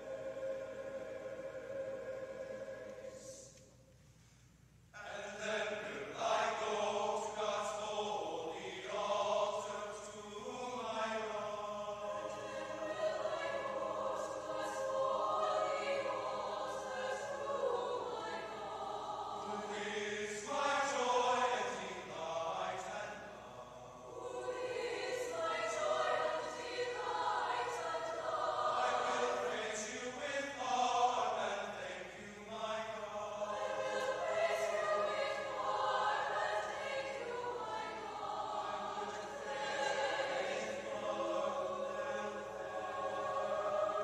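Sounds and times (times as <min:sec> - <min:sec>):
mixed choir singing sustained chords: 0:00.0 - 0:44.0.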